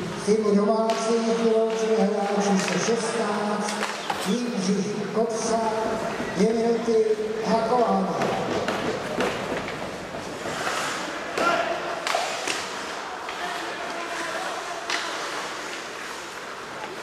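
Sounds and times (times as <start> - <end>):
hockey sticks and puck clacking: 0.8 - 4.6, 5.7 - 17.0.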